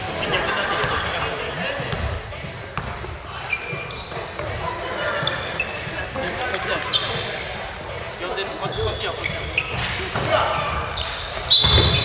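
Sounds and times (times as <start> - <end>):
sneakers squeaking: 0.3 - 12.0.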